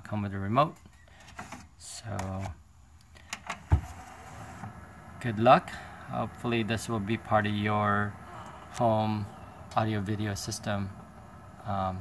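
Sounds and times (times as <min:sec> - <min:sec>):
low mechanism hum: 0:03.6 - 0:12.0
thump: 0:03.7 - 0:03.9.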